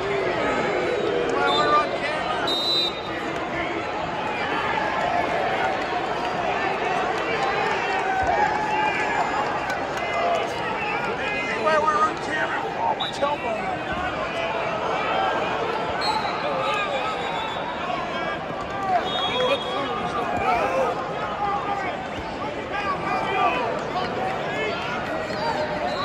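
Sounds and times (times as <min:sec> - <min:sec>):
arena crowd chatter and shouts: 0:00.0 - 0:26.0.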